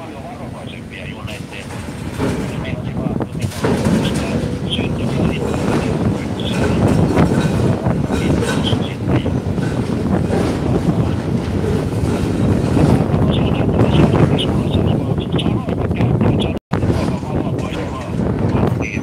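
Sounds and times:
excavator heavy rumble: 0:00.0 - 0:19.0
wind buffeting microphone: 0:00.0 - 0:19.0.

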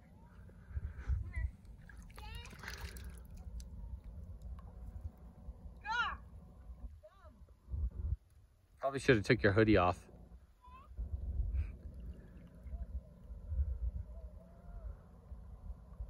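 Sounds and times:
low rumble: 0:00.0 - 0:16.0
water sloshing around wading legs: 0:01.4 - 0:05.5.

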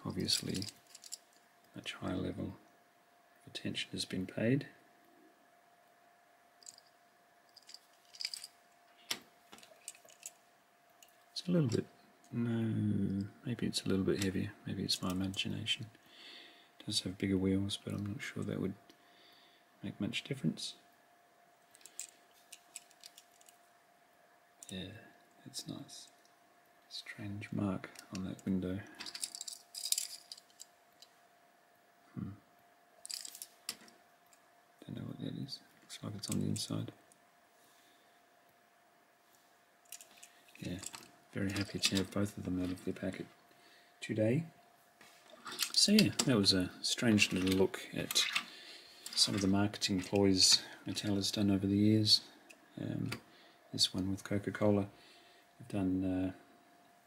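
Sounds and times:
toy cars clicking and rattling: 0:00.2 - 0:01.3, 0:06.6 - 0:06.9, 0:07.6 - 0:08.5, 0:29.0 - 0:30.7, 0:33.0 - 0:33.8.

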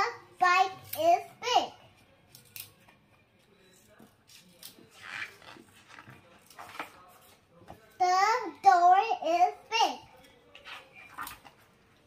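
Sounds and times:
paper pages rustling: 0:04.5 - 0:07.4.

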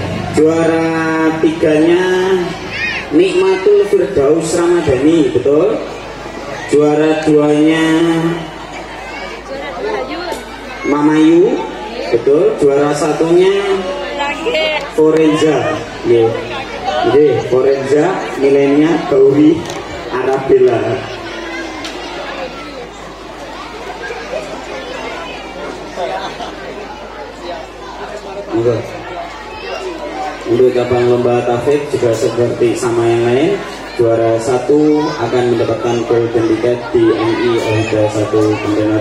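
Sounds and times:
crowd chatter: 0:00.0 - 0:39.0
people talking at once: 0:00.0 - 0:39.0.

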